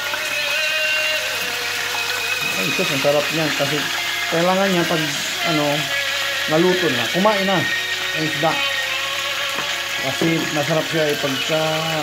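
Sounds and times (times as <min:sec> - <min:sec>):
fish sizzling in oil: 0:00.0 - 0:12.0.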